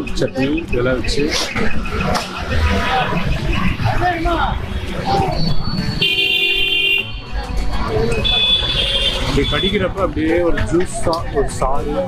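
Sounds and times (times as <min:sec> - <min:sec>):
music: 0:04.6 - 0:12.0.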